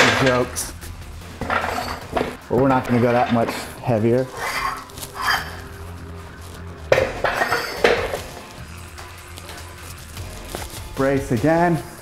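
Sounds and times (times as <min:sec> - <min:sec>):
background music: 0:00.0 - 0:12.0
metal weight plates clanking: 0:01.4 - 0:03.8.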